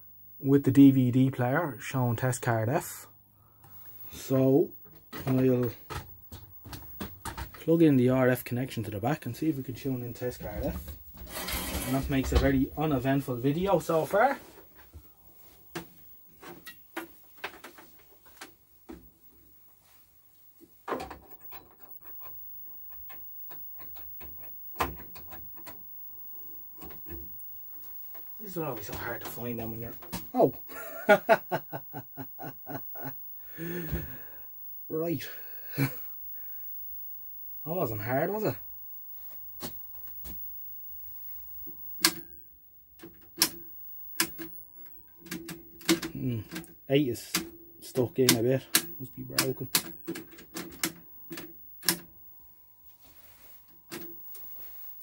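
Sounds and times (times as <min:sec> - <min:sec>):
faint steady tone: 0:00.0 - 0:55.0.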